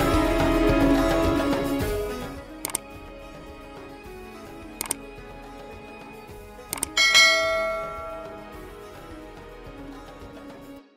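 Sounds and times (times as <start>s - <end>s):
soft background music: 0.0s - 10.9s
bell chime: 7.0s - 8.7s.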